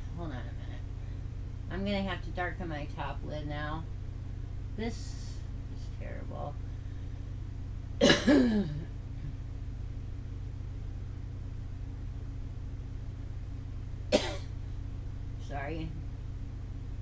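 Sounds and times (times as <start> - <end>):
steady low hum: 0.0 - 17.0
woman coughing: 8.0 - 8.9, 14.1 - 14.5.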